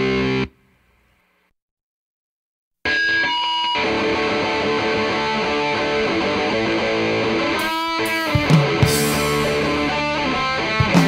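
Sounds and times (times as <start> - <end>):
distorted electric guitar riff: 0.0 - 0.7, 2.9 - 11.0
heavy drums and bass: 7.6 - 11.0
cymbal crashes: 8.2 - 10.0.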